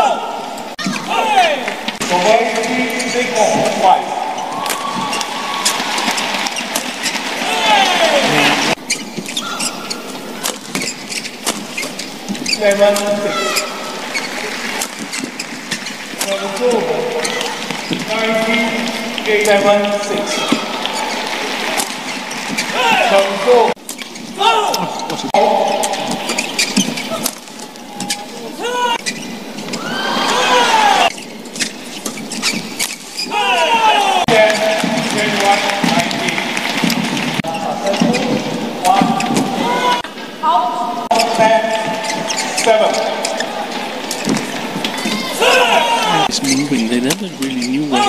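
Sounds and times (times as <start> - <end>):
crowd voices and shouts: 0.0 - 11.4, 12.0 - 31.5, 32.3 - 48.0
shoes squeaking on court: 0.6 - 48.0
rackets hitting shuttlecock: 8.7 - 18.4.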